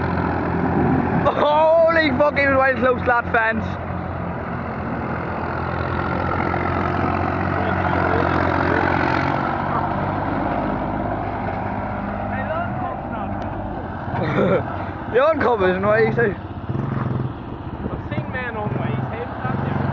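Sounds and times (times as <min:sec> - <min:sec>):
tractor diesel engine running: 0:00.0 - 0:19.9.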